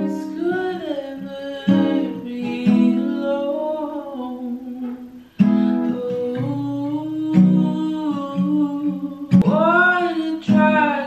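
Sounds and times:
strummed acoustic guitar: 0:00.0 - 0:11.0
woman singing slow melody: 0:00.0 - 0:11.0.

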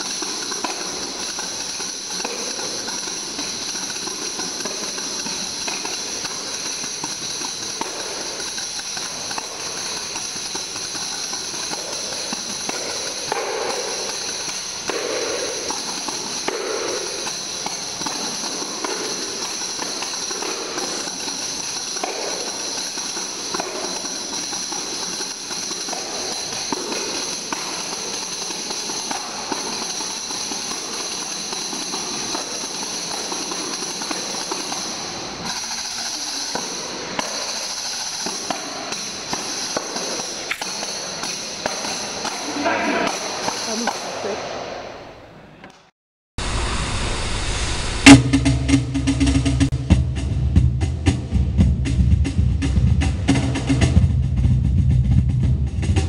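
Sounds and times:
taps on tambourine drumheads: 0:00.0 - 0:44.1
tambourine jingles shaking: 0:00.0 - 0:44.2.

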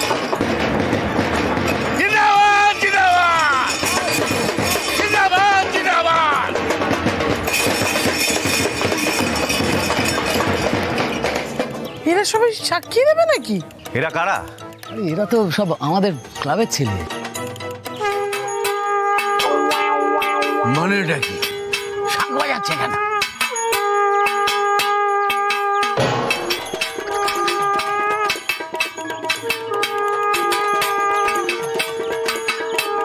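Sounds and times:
rapid metallic clattering: 0:00.0 - 0:33.0
rapid percussion hits: 0:00.0 - 0:33.0.

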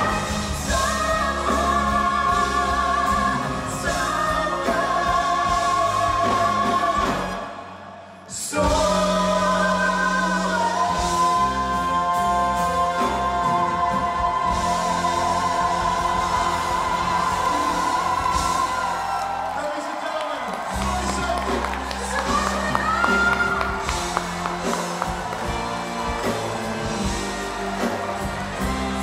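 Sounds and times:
woman and man singing duet: 0:00.0 - 0:07.6, 0:08.3 - 0:19.4
band playing: 0:00.0 - 0:29.0
crowd cheering: 0:00.0 - 0:29.0.

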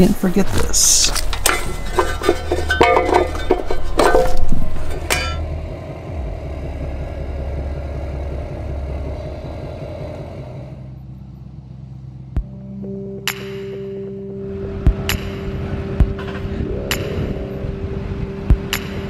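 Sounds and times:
vehicle engine rumbling: 0:00.0 - 0:19.0
metal gear clattering: 0:00.9 - 0:05.4
music: 0:01.0 - 0:19.0.

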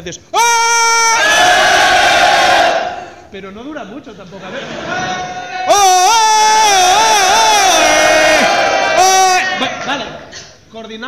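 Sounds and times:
man shouting: 0:00.3 - 0:01.6, 0:04.9 - 0:10.2
crowd shouting together: 0:00.8 - 0:03.2, 0:04.9 - 0:10.2.

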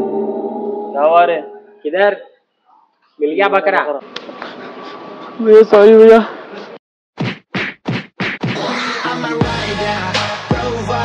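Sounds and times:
background music: 0:08.6 - 0:11.0.

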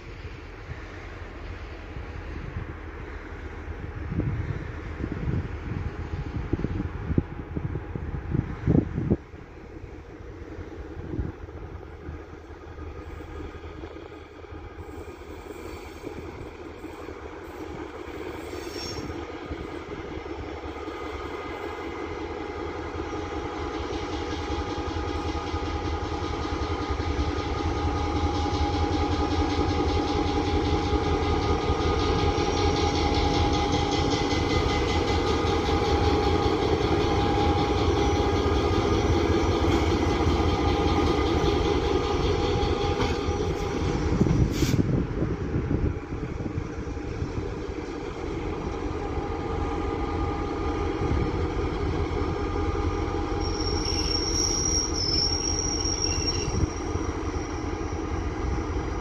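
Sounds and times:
diesel locomotive engine rumble: 0:00.0 - 0:59.0.

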